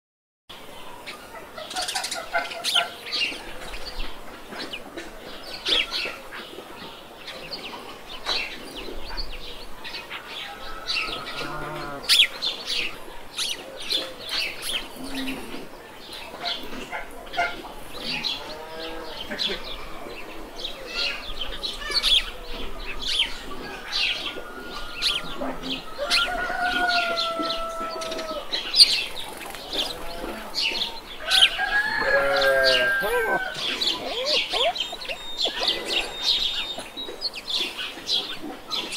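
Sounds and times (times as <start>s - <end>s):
small birds chirping: 0.8s - 38.9s
chickens clucking: 1.0s - 9.1s, 10.1s - 38.9s.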